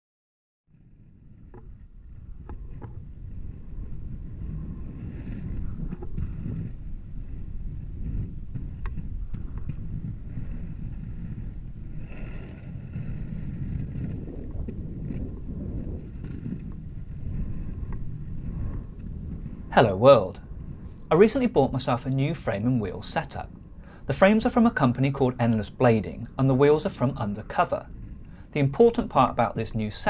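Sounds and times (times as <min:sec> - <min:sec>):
skate wheels rolling on asphalt: 0:00.7 - 0:30.0
wind on microphone: 0:00.7 - 0:30.0.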